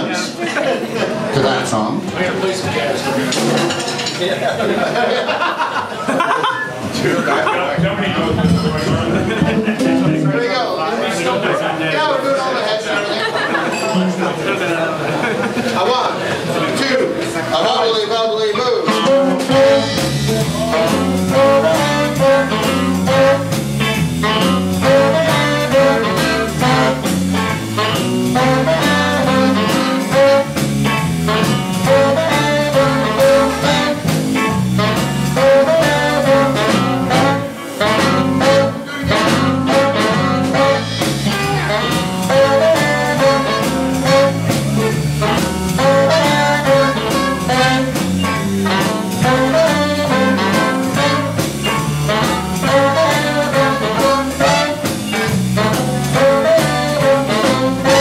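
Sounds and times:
small jazz band playing: 0.0s - 58.0s
trumpet and saxophone melody: 7.9s - 10.8s, 18.8s - 58.0s.

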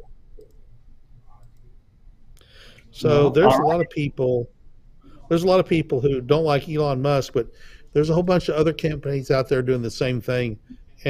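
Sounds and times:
low room hum: 0.0s - 11.0s
faint murmur: 3.0s - 4.4s
man speaking: 3.0s - 4.5s, 5.3s - 10.6s.

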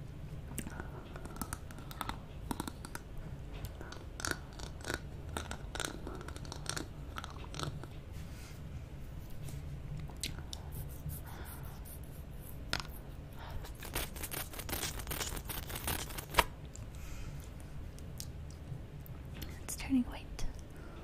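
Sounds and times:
steady low hum: 0.0s - 21.0s
licking and sucking lollipop: 3.6s - 8.0s.

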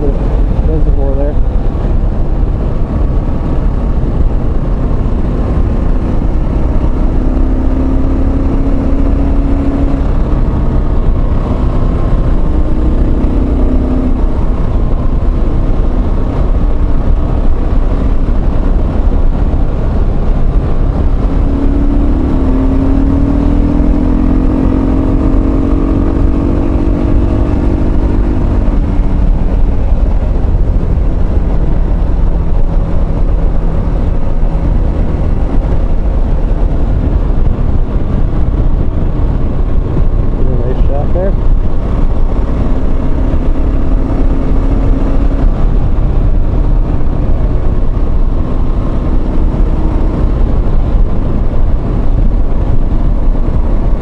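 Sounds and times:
motorcycle engine hum: 0.0s - 54.0s
wind rumble: 0.0s - 54.0s.

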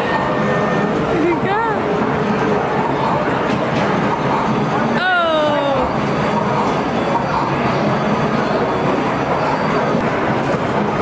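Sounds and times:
arcade game machines noise: 0.0s - 11.0s
crowd noise: 0.0s - 11.0s.

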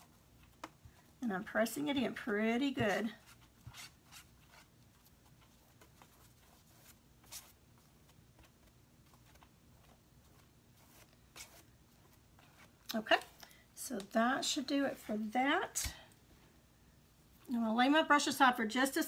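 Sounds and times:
paintbrush dabbing paper: 0.0s - 13.4s
low room hum: 0.0s - 19.0s.

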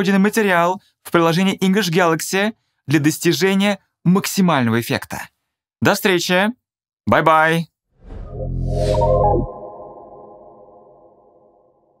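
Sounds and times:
electronic chord ringing: 8.3s - 11.8s.

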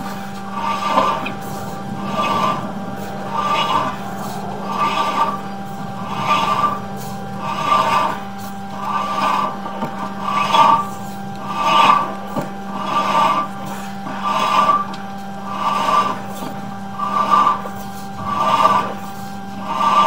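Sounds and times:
cable scraping in pipe: 0.0s - 20.0s
electrical hum: 0.0s - 20.0s.

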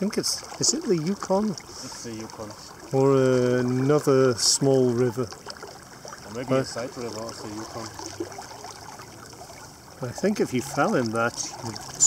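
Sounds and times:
river water running: 0.0s - 12.0s.

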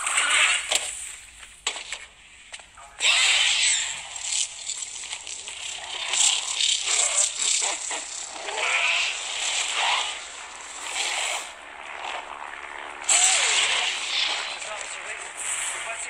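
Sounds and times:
loud hiss and crackle: 0.0s - 16.0s.

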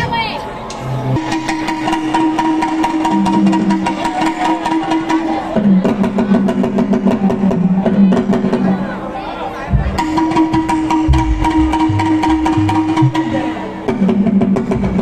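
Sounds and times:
quick percussion pattern: 9.7s - 13.7s
sustained keyboard chord: 11.1s - 13.3s.

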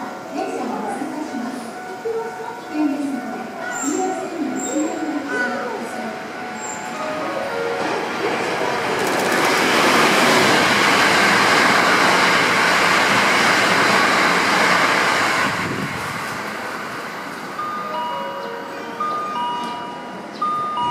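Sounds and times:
train rushing past: 0.0s - 20.9s
electronic chime tones: 17.6s - 20.9s.

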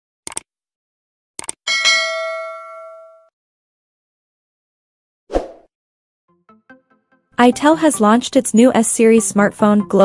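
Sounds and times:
notification bell ding: 1.7s - 3.3s.

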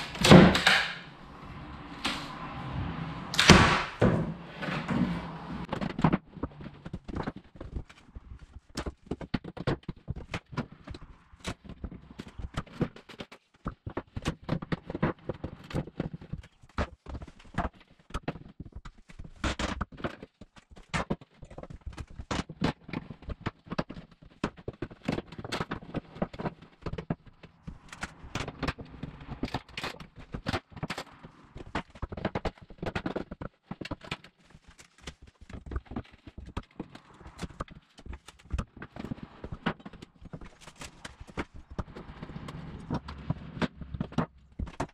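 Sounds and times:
hollow wooden knocks and clunks: 0.0s - 44.9s.

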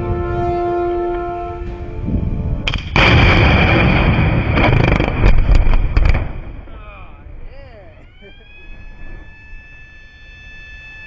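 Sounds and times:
rumble of explosion: 1.8s - 7.6s
blast sharp crack: 2.6s - 6.8s.

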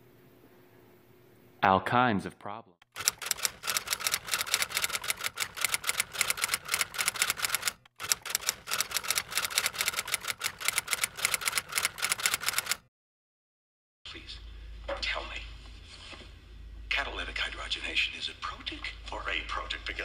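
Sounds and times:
keyboard typing: 2.8s - 12.8s.

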